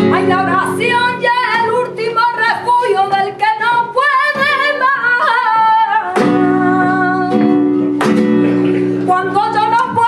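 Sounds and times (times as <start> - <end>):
flamenco guitar: 0.0 - 10.0
woman singing flamenco: 0.0 - 10.0.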